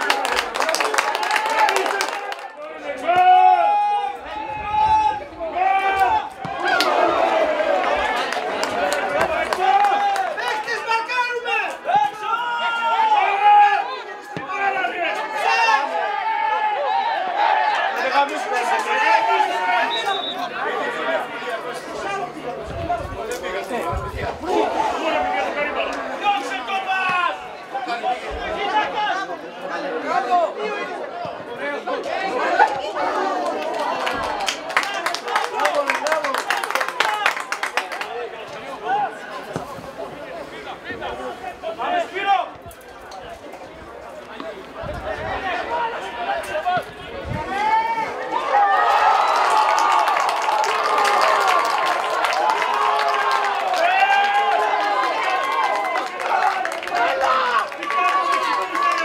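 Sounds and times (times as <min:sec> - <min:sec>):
football spectators shouting: 0:00.0 - 0:59.0
voices talking and calling out: 0:00.0 - 0:59.0.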